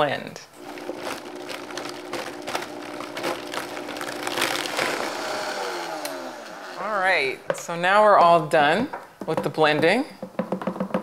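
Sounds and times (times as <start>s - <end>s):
blender motor running: 0.6s - 6.9s.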